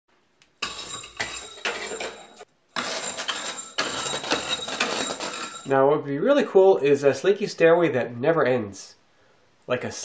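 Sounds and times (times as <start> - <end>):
metal slinky clinking down steps: 0.6 - 5.7.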